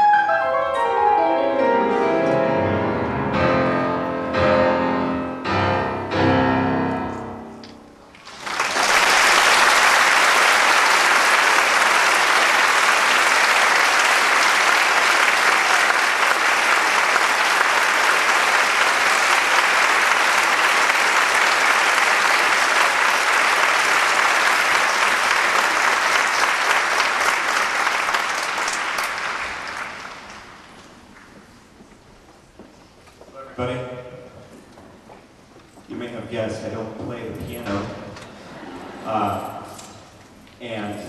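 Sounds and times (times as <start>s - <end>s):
audience applauding: 8.1s - 31.6s.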